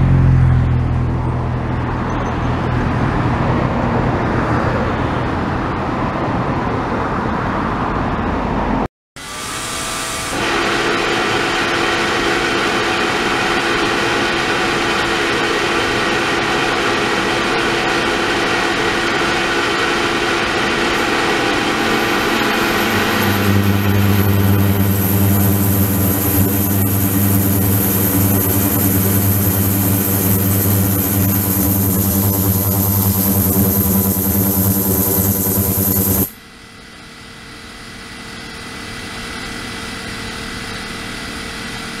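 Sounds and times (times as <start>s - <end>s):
low buzz: 9.2s - 36.4s
high whine: 9.3s - 36.4s
ultrasonic cleaner hiss: 20.8s - 36.3s.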